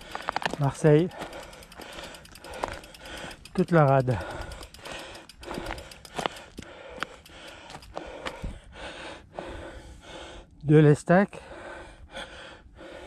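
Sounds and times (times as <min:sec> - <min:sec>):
sharp clicks from bike: 0:00.0 - 0:08.4
person breathing in soft puffs: 0:01.1 - 0:03.5, 0:04.1 - 0:10.6, 0:11.4 - 0:13.0.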